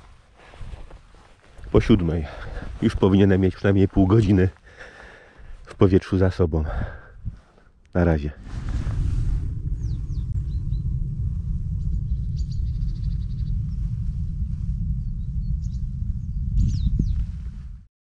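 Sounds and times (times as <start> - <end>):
wind rumble on microphone: 0.0 - 4.6, 6.7 - 7.6, 8.2 - 17.9
birds chirping: 9.6 - 11.0, 11.8 - 13.8, 15.0 - 17.3.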